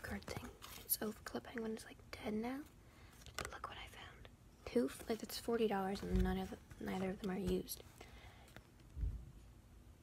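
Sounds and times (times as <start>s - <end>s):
girl whispering: 3.5s - 7.7s.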